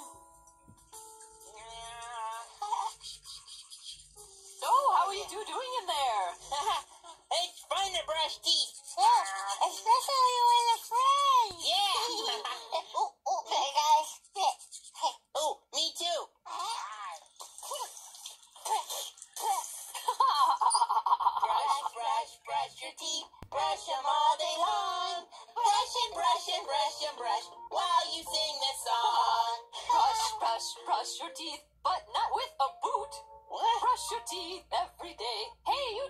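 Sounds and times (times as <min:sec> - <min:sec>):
cartoon toothbrush scrubbing: 0:01.4 - 0:11.2, 0:13.5 - 0:15.3, 0:16.5 - 0:22.6
child laughing: 0:02.5 - 0:04.1, 0:09.0 - 0:09.8, 0:11.7 - 0:13.5, 0:20.0 - 0:21.9
woman speaking: 0:04.6 - 0:08.6.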